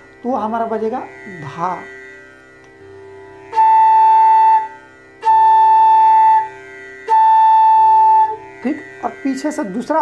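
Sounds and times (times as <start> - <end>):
bamboo flute holding a note: 3.5 - 8.7.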